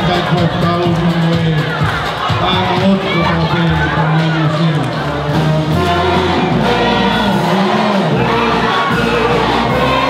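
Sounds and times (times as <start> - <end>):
amplified accompaniment with bass: 0.0 - 10.0
many voices singing together: 5.5 - 10.0.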